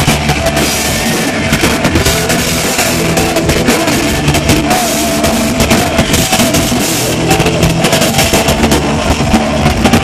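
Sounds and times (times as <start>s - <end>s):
live heavy metal band: 0.0s - 10.0s.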